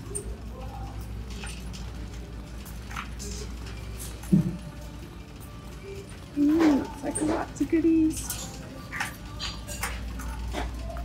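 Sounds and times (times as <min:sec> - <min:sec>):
shop floor din: 0:00.0 - 0:11.0.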